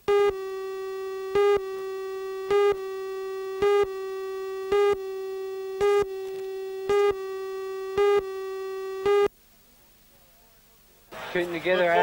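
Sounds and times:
countdown beeps: 0.0 - 9.3
steady electronic tone: 0.0 - 9.3.

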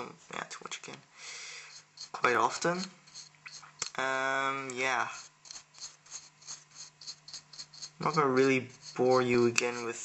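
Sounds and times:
brush scrubbing on plastic: 1.6 - 3.9, 4.9 - 10.0.

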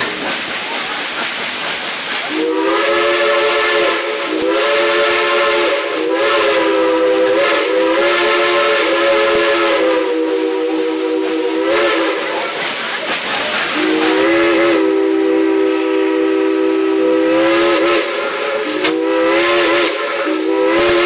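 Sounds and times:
steam hissing: 0.0 - 21.0
steam locomotive chime whistle: 2.3 - 12.4, 13.7 - 21.0.

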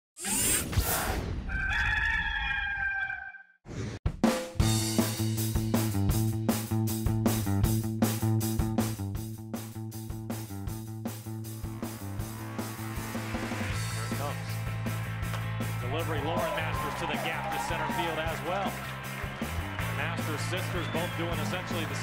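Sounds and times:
rooster crowing: 1.5 - 3.5
rock music: 4.2 - 22.0.

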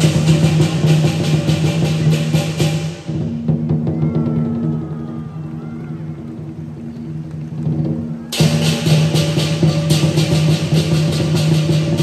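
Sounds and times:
cymbals clashing: 0.0 - 3.8, 8.3 - 12.0
drum beating in a fast roll: 0.0 - 12.0.

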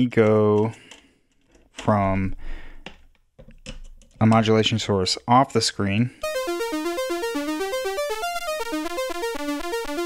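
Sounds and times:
synthesizer sequenced melody: 6.2 - 10.0.

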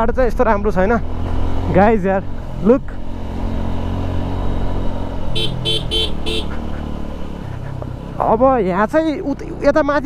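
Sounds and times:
motorcycle engine running: 0.4 - 10.0
horn beeping: 5.3 - 6.6.

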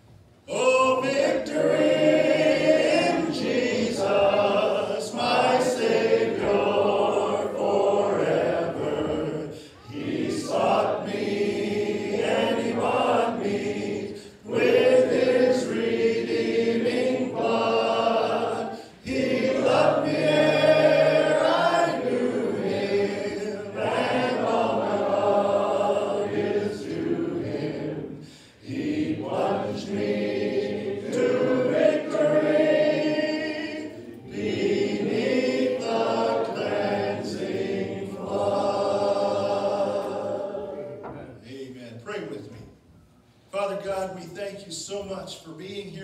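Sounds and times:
congregation singing a hymn: 0.0 - 42.7.

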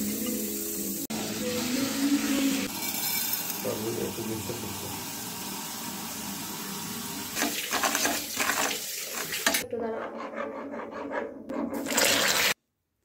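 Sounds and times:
water pouring into a pan: 2.7 - 9.6, 11.8 - 12.6.

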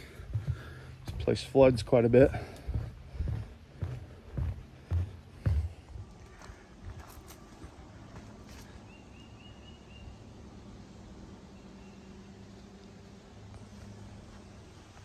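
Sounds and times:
footsteps on wooden boardwalk: 0.0 - 8.8, 13.6 - 15.0
outdoor ambience: 0.0 - 15.0.

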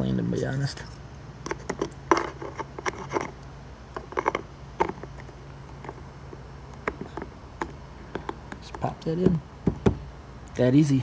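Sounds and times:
faint low hum: 0.0 - 11.0
plastic clicks taps and scrapes: 6.7 - 10.0.

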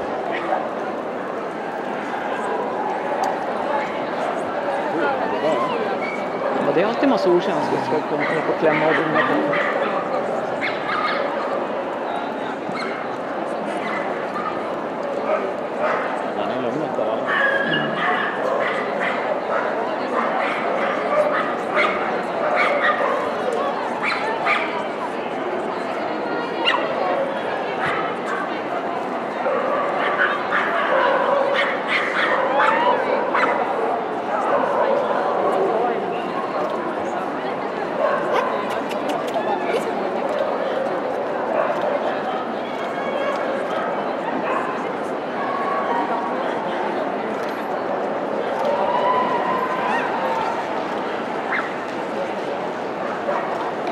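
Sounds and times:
many voices chattering: 0.0 - 53.9
dogs barking and yipping: 29.5 - 33.6.

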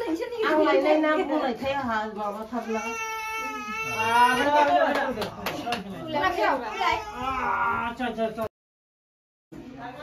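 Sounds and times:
women's voices: 0.0 - 3.8
baby crying: 2.6 - 4.7, 6.4 - 8.0.

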